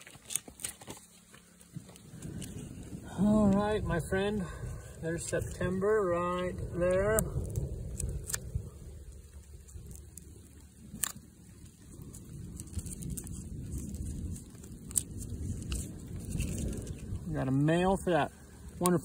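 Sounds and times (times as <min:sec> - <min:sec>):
steady low rumble: 0:01.1 - 0:19.0.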